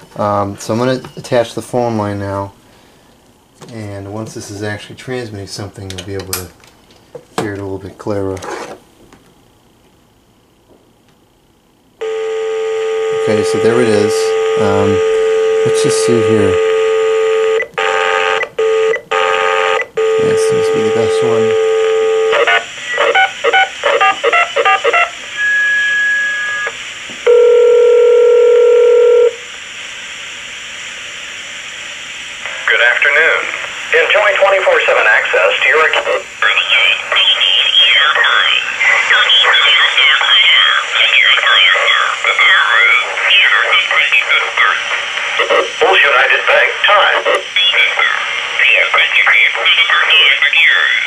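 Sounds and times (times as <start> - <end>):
recorded voice message: 13.1 - 16.6, 20.2 - 21.6, 32.4 - 51.0
radio hiss: 13.2 - 16.7, 20.1 - 21.6, 22.3 - 27.2, 29.4 - 51.0
ringback tone: 27.3 - 29.4.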